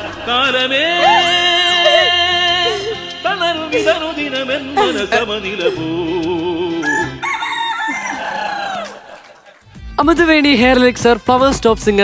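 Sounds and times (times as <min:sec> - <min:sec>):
rooster crowing: 0:06.8 - 0:09.2.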